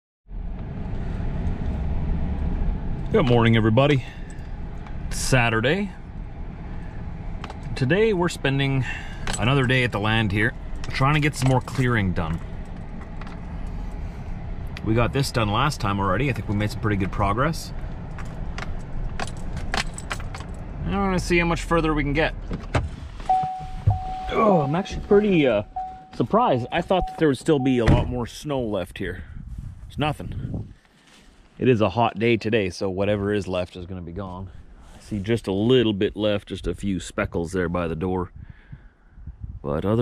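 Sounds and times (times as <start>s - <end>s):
pickup truck engine rumble: 0.3s - 31.8s
jingling and rattling clicks: 18.1s - 20.7s.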